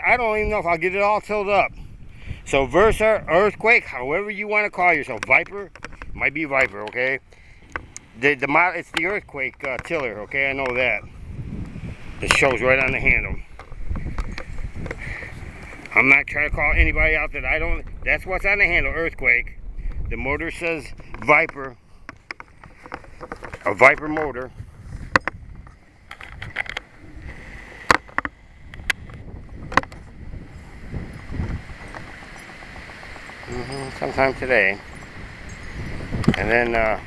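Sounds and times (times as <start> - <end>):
wind buffeting microphone: 0.0 - 37.0
microphone handling clicks: 5.1 - 16.0, 20.8 - 33.5.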